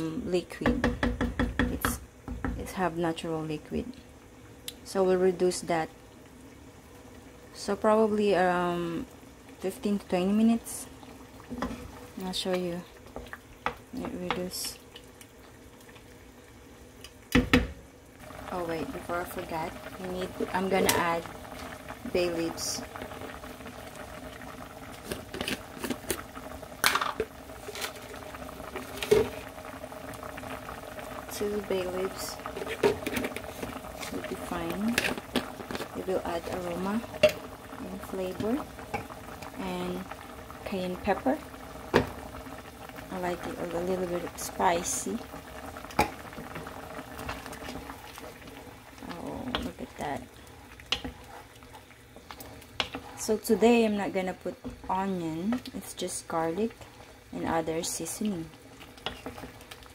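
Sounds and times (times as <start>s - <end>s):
squid simmering in a pan: 0.0s - 59.9s.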